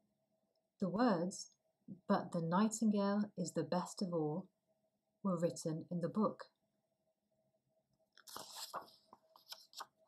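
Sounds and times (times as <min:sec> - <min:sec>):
paper page turning: 0:08.2 - 0:10.0.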